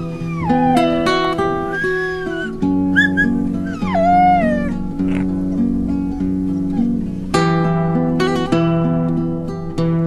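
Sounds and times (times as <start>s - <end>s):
dog yelping and whining: 0.0s - 7.1s
acoustic guitar music: 0.0s - 10.0s.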